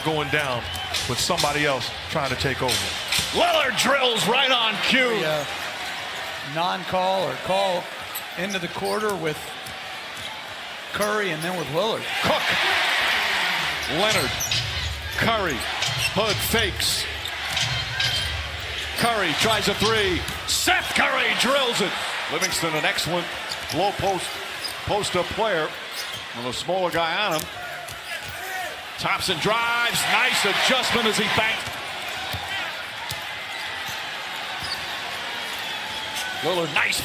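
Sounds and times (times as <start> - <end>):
arena crowd noise: 0.0 - 37.0.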